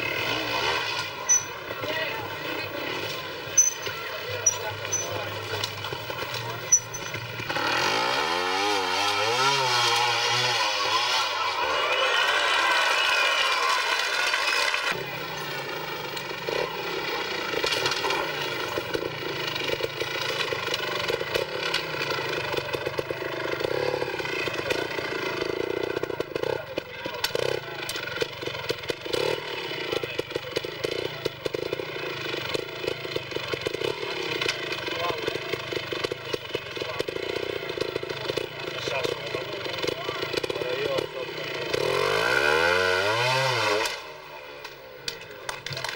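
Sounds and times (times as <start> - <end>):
motorcycle engine revving: 0.0 - 45.9.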